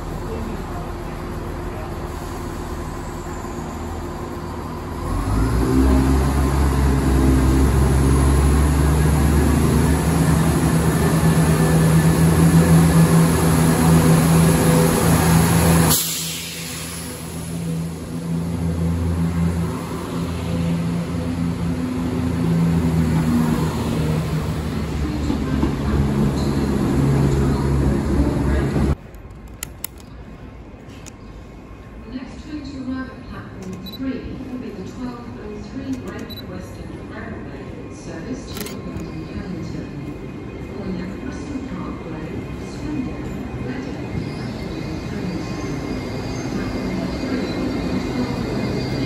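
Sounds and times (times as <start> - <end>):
train carriages running past: 0.0 - 29.0
diesel train engines droning: 0.0 - 49.0.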